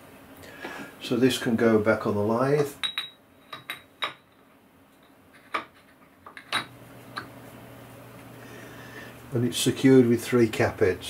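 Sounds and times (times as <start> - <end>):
low steady hum: 0.0 - 11.0
metallic clinks: 2.8 - 4.4.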